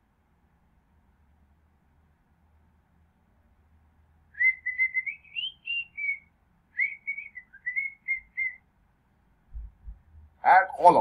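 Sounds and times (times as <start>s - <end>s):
person whistling a tune: 4.4s - 6.2s, 6.8s - 8.6s.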